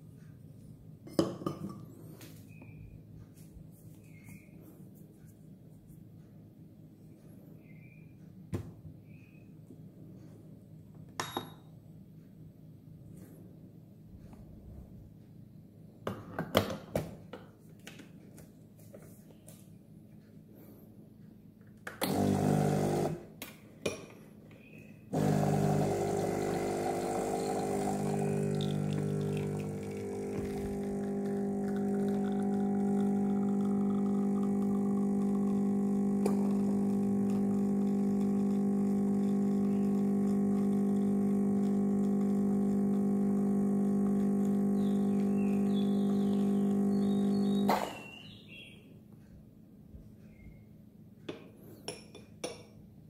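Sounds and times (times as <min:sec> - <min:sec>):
espresso machine pump humming: 0:22.0 - 0:23.3, 0:25.1 - 0:47.8.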